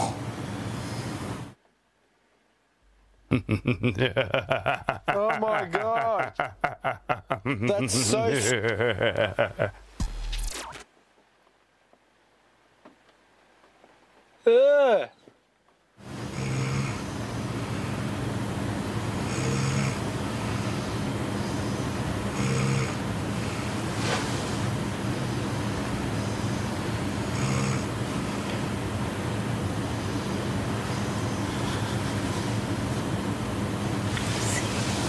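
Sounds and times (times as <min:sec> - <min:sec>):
person snoring: 0:16.3 - 0:17.5, 0:19.2 - 0:21.0, 0:22.3 - 0:23.8, 0:27.3 - 0:28.4.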